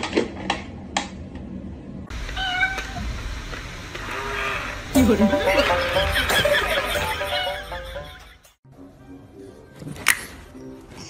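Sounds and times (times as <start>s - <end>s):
cat meowing: 2.4s - 3.0s.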